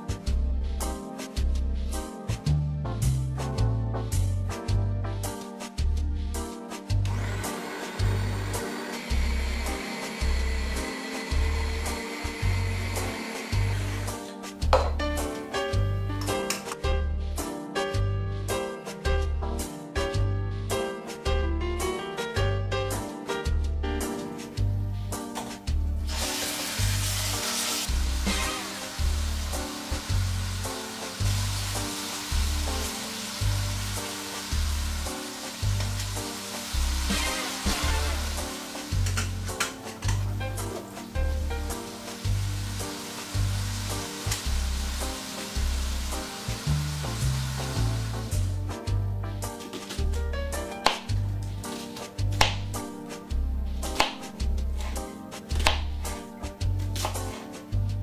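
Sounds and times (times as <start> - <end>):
background music with bass line: 0.0 - 58.0
music with bass beat: 0.1 - 7.1, 13.5 - 22.0, 46.6 - 58.0
knife knocking on cutting board: 14.7 - 15.0
meat sizzling in hot oil: 26.0 - 39.9, 40.6 - 48.6
knife slicing onion: 50.8 - 51.2, 51.9 - 52.8, 53.8 - 56.1.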